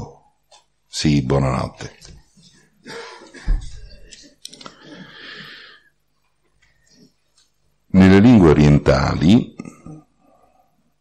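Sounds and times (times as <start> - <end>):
faint breathy noise: 2.8 - 7.2, 9.8 - 11.0.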